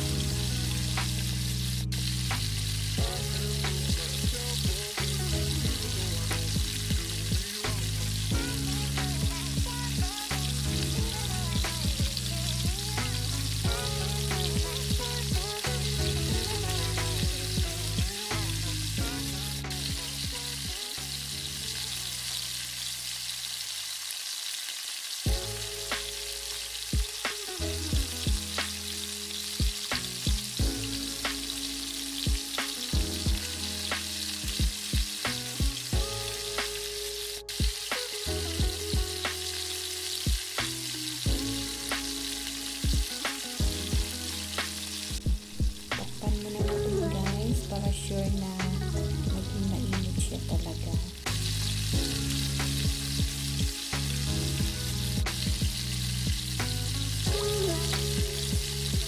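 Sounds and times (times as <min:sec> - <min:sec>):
background music: 0:00.0 - 0:23.0, 0:25.2 - 0:59.0
food sizzling in a frying pan: 0:00.0 - 0:59.0
regular clicking beat: 0:29.6 - 0:31.5.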